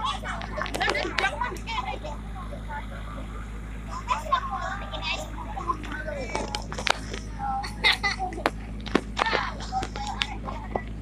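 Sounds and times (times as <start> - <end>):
faint distant voices: 0.0 - 11.0
steady low hum: 0.0 - 11.0.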